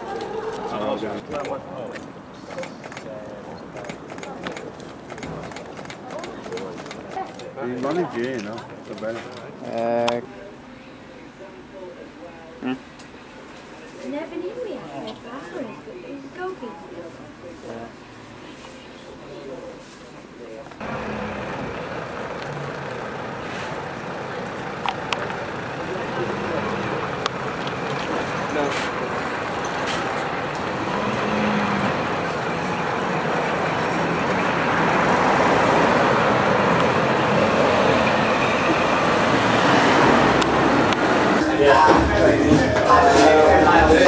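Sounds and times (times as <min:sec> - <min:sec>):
road noise: 0:00.0 - 0:44.0
voices: 0:00.0 - 0:44.0
coach engine running: 0:20.8 - 0:44.0.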